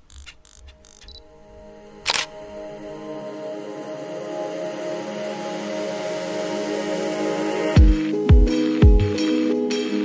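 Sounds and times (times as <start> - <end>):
camera shutter click: 2.0 - 2.4.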